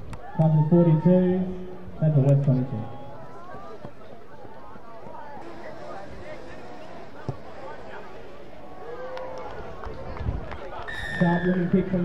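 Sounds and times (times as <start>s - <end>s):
steady low background noise: 1.0s - 12.0s.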